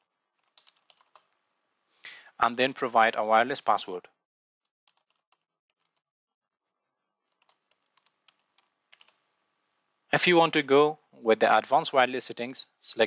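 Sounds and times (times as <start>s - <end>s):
computer keyboard typing: 0.4s - 1.4s, 4.9s - 6.0s, 7.3s - 9.2s.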